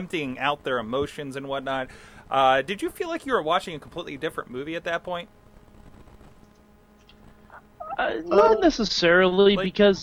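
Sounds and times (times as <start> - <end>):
low electrical hum: 0.0 - 10.0
person speaking: 7.8 - 8.9.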